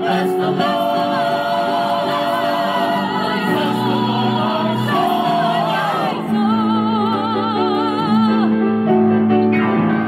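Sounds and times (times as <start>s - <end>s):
group singing gospel-style song: 0.0s - 8.5s.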